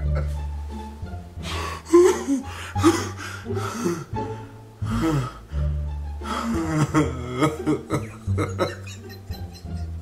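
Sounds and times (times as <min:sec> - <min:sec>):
man wheezing laughter: 0:01.9 - 0:03.2, 0:06.4 - 0:09.9.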